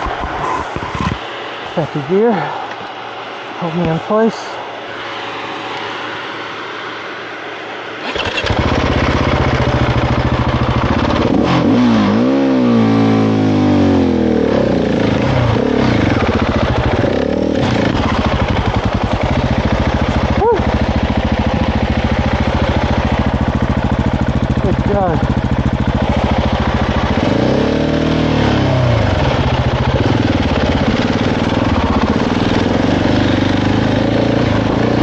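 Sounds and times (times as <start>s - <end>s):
motorcycle engine revving: 8.0s - 35.0s.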